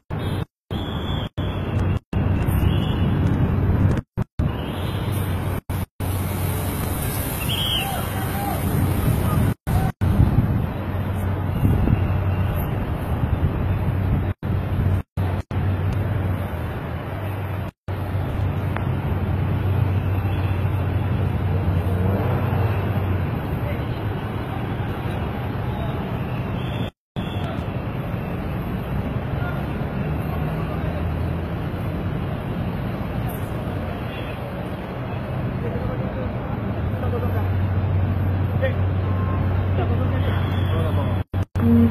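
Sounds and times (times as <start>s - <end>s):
city traffic: 0.0s - 41.9s
indistinct voices: 41.6s - 41.9s.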